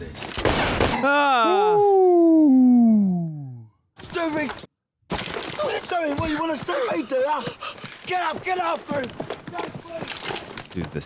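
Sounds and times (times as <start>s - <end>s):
man exclaiming ooh in shock: 1.0s - 3.7s.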